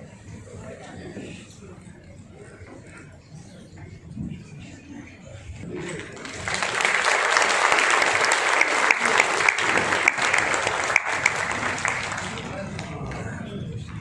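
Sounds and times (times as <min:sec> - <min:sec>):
audience applause: 0:05.8 - 0:13.3.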